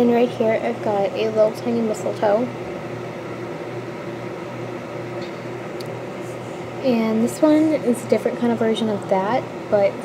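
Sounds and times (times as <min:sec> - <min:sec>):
appliance mechanical hum: 0:00.0 - 0:10.0.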